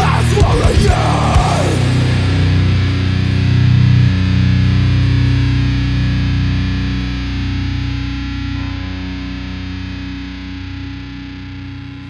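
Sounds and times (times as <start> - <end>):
distorted electric guitar notes ringing: 0.0 - 12.0.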